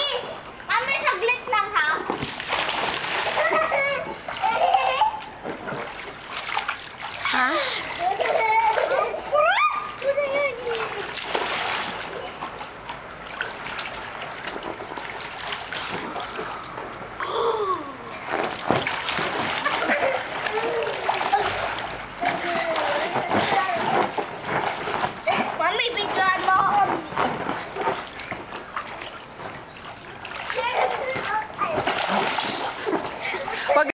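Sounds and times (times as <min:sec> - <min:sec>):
water splashing in paddling pool: 0:00.0 - 0:33.9
child's voice: 0:10.0 - 0:11.0, 0:25.6 - 0:27.0, 0:30.6 - 0:31.9.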